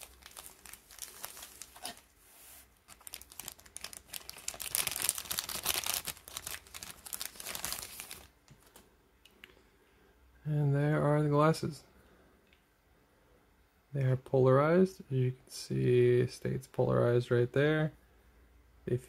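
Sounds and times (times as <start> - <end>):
plastic bag crinkling: 0.0 - 2.1, 2.8 - 8.8.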